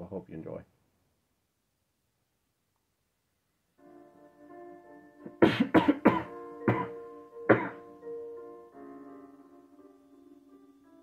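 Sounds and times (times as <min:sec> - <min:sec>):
soft piano backing track: 0:03.7 - 0:11.0
man coughing: 0:05.3 - 0:07.8.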